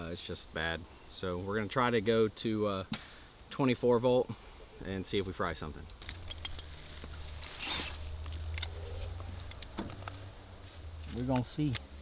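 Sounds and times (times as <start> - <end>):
cables rustling: 5.9 - 11.8.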